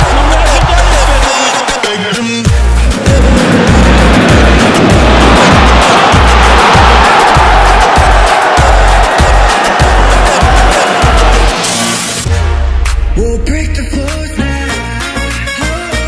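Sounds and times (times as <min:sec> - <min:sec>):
loud music with heavy bass: 0:00.0 - 0:16.0.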